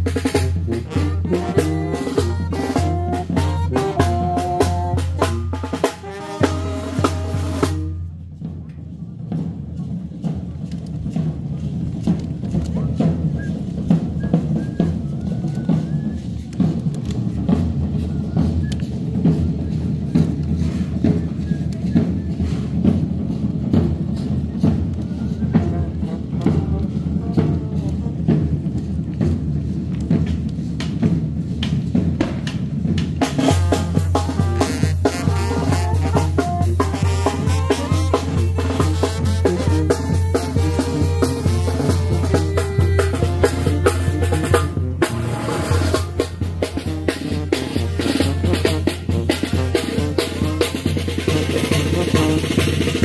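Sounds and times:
brass horns: 0.0s - 8.1s, 25.5s - 28.6s, 33.3s - 53.0s
bass drum and snare rolls: 0.0s - 53.0s.

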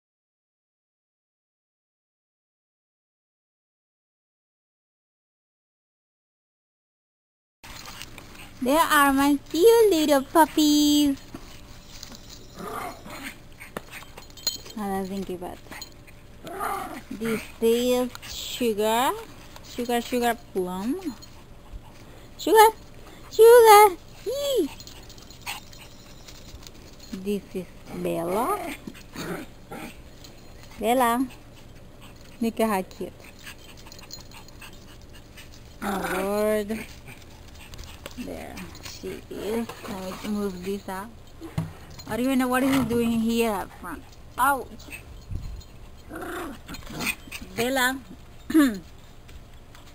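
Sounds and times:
puppy sound: 7.7s - 14.4s, 15.1s - 49.0s
puppy rustling in dry leaves: 7.7s - 15.8s
woman's voice: 8.6s - 11.3s, 14.7s - 15.8s, 17.0s - 21.2s, 22.4s - 24.8s, 27.1s - 28.8s, 30.7s - 31.4s, 32.4s - 33.2s, 35.8s - 36.9s, 38.2s - 41.2s, 42.0s - 44.9s, 47.3s - 48.9s.

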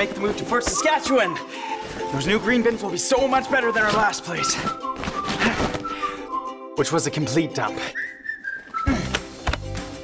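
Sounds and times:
upbeat music with steady beat: 8.9s - 10.0s.

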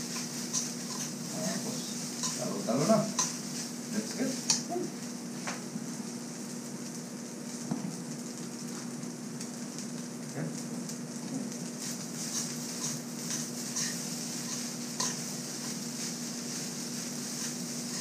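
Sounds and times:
rice sizzling in a wok: 0.0s - 18.0s
metal spoon scraping a pan: 0.1s - 2.5s, 3.1s - 3.4s, 12.2s - 16.2s, 17.2s - 18.0s.

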